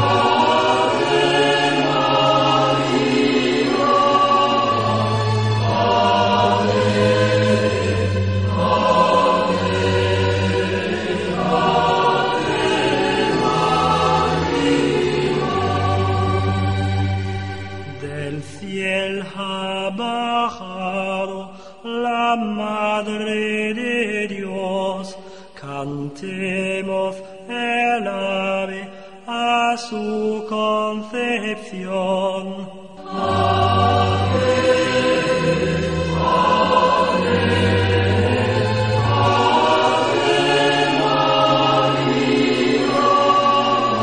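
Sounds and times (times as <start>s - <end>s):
choir singing a hymn: 0.0s - 25.0s, 25.6s - 44.0s.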